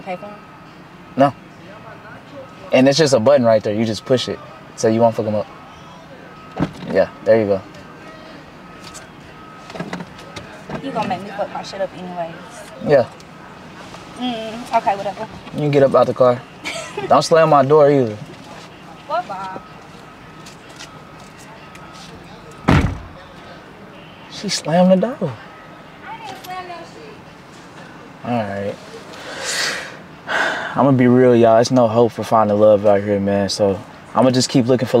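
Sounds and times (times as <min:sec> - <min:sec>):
low hum inside car cabin: 0:00.0 - 0:25.4
car door slamming: 0:06.5 - 0:07.0, 0:22.6 - 0:23.2.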